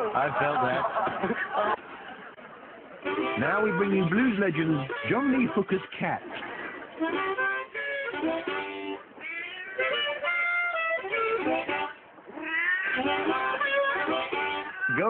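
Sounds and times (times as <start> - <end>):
blues music with harmonica: 3.0 - 15.0
cat meowing: 9.2 - 10.5, 12.3 - 15.0.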